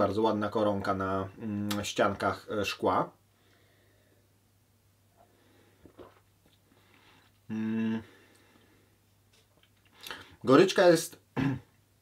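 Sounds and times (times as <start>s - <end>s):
faint swallowing: 5.8s - 8.4s.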